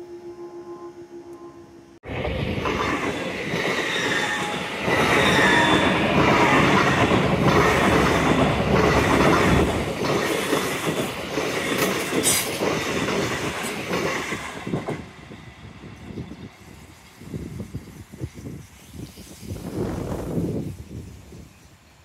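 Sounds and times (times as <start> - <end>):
faint high steady tone: 0.0 - 2.0
train wheels rumbling on rails: 2.0 - 22.0.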